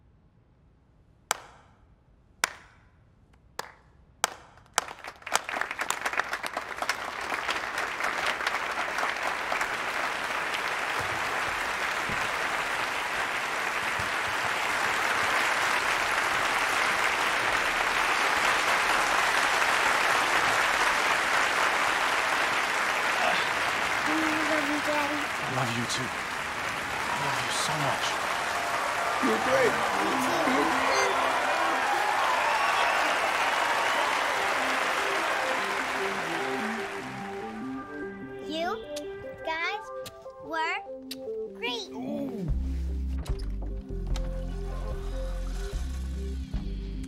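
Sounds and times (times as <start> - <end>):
single person slow clapping: 1.3 - 1.7, 3.6 - 7.6
audience applause: 4.2 - 38.0.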